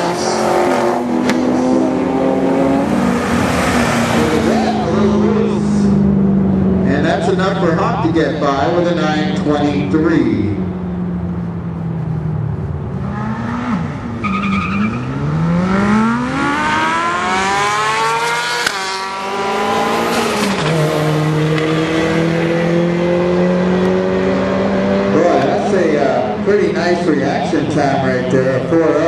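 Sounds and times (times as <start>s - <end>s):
drag racing car engine accelerating: 0.0s - 29.0s.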